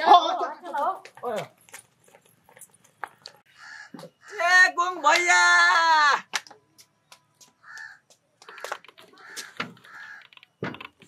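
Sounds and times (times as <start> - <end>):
crow cawing: 3.5 - 4.5, 7.6 - 10.4.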